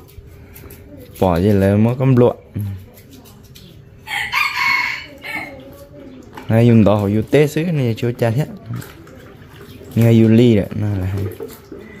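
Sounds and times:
rooster crowing: 0:04.1 - 0:05.6.

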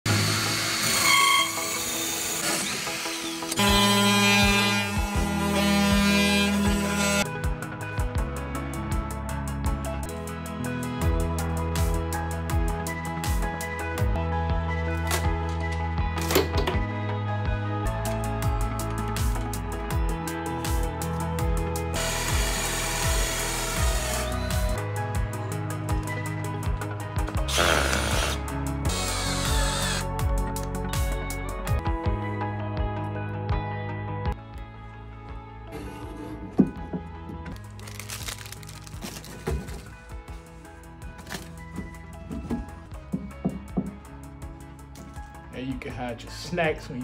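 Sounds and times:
drill cutting wood with hole saw: 0:00.1 - 0:07.2, 0:22.0 - 0:24.8, 0:27.5 - 0:30.1
background music: 0:00.1 - 0:47.0
oscillating multi-tool buzz: 0:22.0 - 0:24.8, 0:27.5 - 0:30.1.

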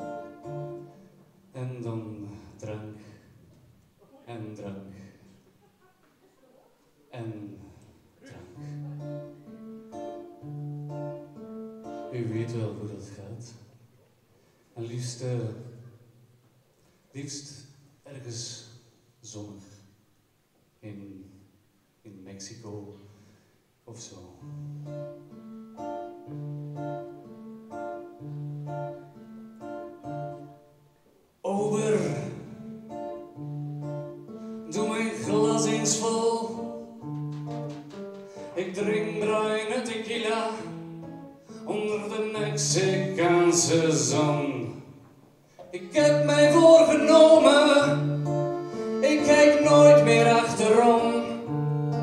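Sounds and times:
acoustic guitar: 0:00.0 - 0:20.0, 0:22.6 - 0:52.0
accordion held notes: 0:32.0 - 0:39.3, 0:45.6 - 0:52.0
accordion: 0:45.6 - 0:52.0
upright bass notes: 0:46.0 - 0:52.0.

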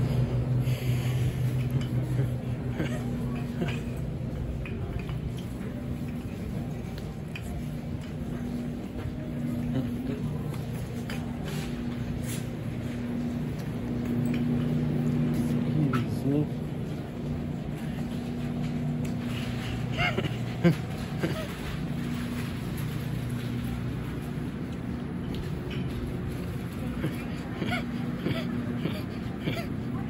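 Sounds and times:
faint voices: 0:00.0 - 0:30.0
low electrical hum: 0:00.0 - 0:30.0.

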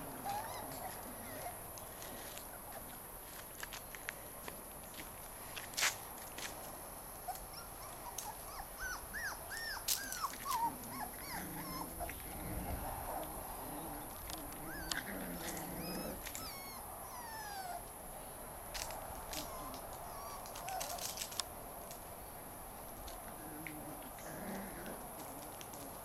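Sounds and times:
puppies whining and yelping: 0:00.0 - 0:03.0, 0:07.2 - 0:13.3, 0:14.0 - 0:17.9, 0:19.3 - 0:21.4.

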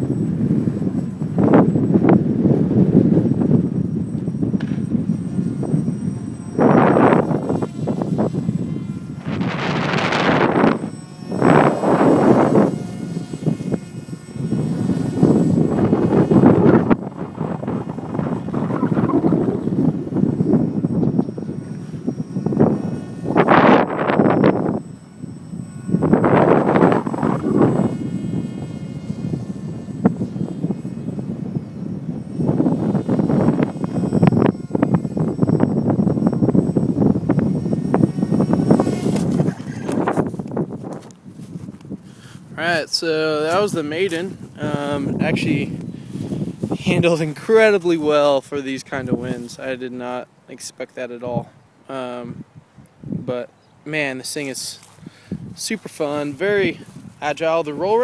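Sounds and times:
electric motor and propeller whine: 0:00.0 - 0:58.0
wind buffeting microphone: 0:00.0 - 0:58.0.

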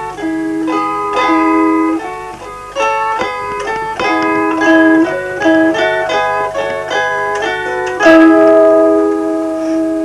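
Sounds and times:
plucked zither chord ringing: 0:00.0 - 0:10.0.

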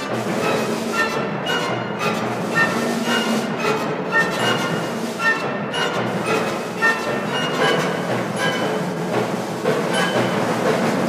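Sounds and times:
symphony orchestra playing: 0:00.0 - 0:11.0.

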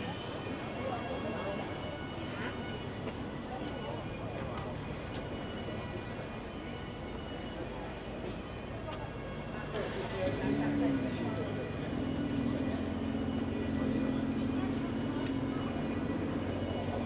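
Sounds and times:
chatter of passers-by: 0:00.0 - 0:17.0.

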